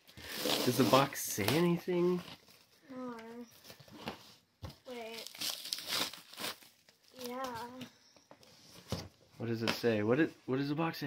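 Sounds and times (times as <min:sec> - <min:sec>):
plastic stretch wrap crinkling: 0:04.9 - 0:07.8.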